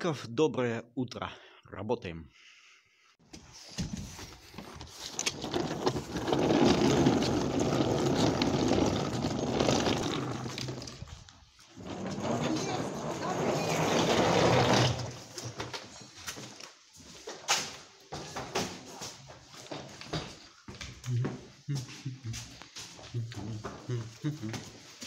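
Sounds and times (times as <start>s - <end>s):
suitcase wheels rolling on asphalt: 4.6s - 15.8s.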